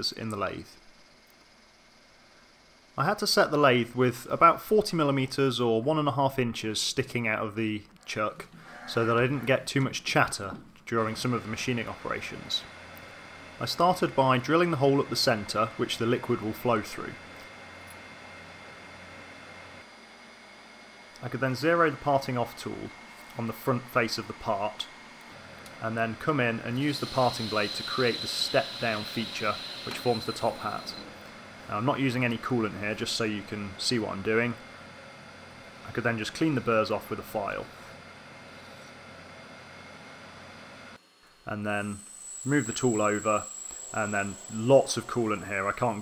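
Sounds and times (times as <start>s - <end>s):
metal lathe running: 11.0s - 41.0s, 41.7s - 46.0s
steady hiss: 25.9s - 34.6s.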